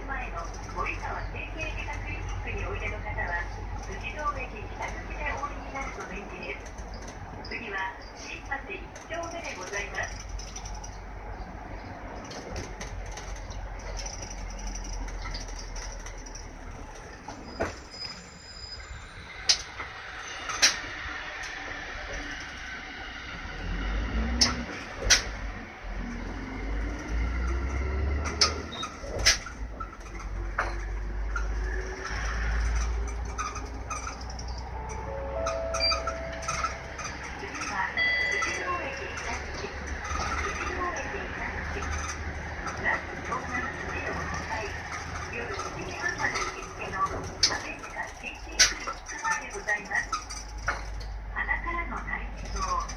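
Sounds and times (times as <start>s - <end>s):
faint rattles: 0.0s - 18.2s, 24.4s - 52.9s
bus engine and road drone: 0.0s - 52.9s
brief held tones: 34.9s - 36.4s.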